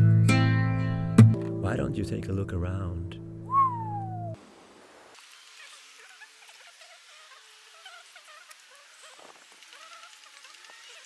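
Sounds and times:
whistled note gliding down: 3.5s - 4.4s.

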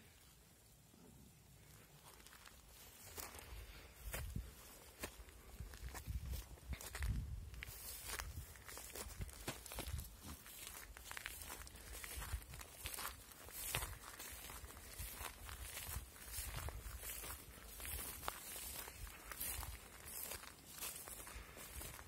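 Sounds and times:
footsteps crunching on dry grass: 1.6s - 22.0s.

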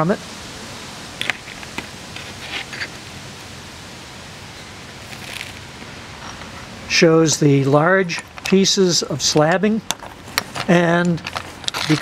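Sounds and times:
steady background hiss: 0.0s - 12.0s
stones clicking together: 9.4s - 12.0s.

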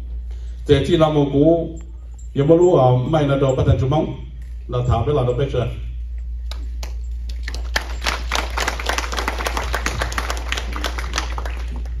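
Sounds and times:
low electrical hum: 0.0s - 12.0s
audience clapping: 6.5s - 12.0s.

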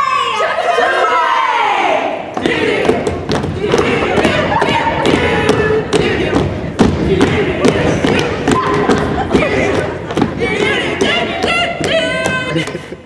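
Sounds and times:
heavy footfalls on stage floor: 2.4s - 12.5s.

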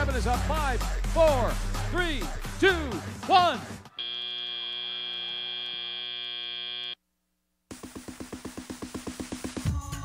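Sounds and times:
buzzer sounding: 4.0s - 7.0s
music with quick even beat: 7.7s - 10.0s.

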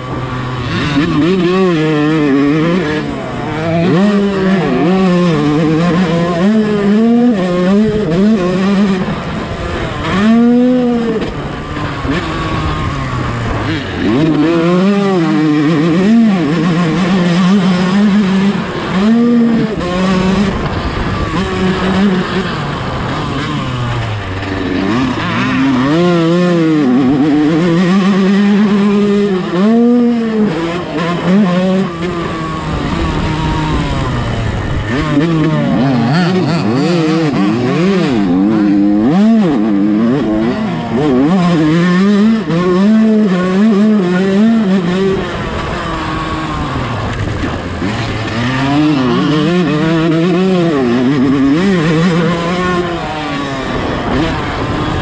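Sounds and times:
motocross bike engine revving: 0.0s - 55.0s.

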